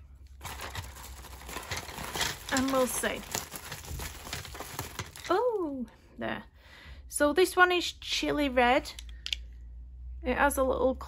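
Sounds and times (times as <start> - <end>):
bubble wrap crinkling: 0.3 - 5.6
wooden pencils clicking together: 1.4 - 5.4, 8.9 - 9.4.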